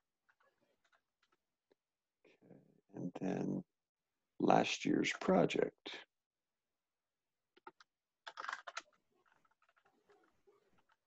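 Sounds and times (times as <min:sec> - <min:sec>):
computer keyboard typing: 0:07.6 - 0:11.0.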